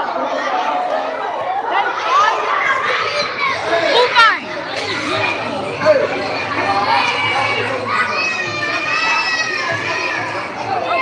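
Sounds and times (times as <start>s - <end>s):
crowd of children talking and shouting: 0.0s - 11.0s.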